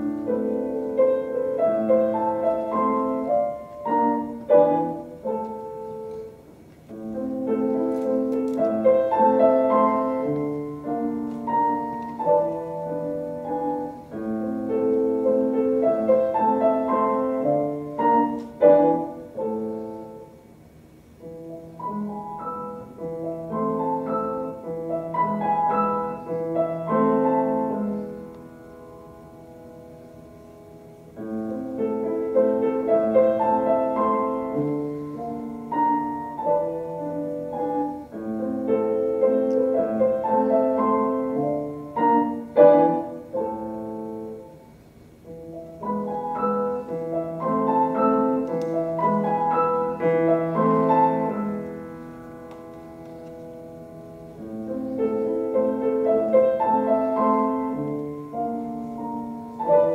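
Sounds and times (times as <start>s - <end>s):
solo classical piano: 0.0s - 59.9s.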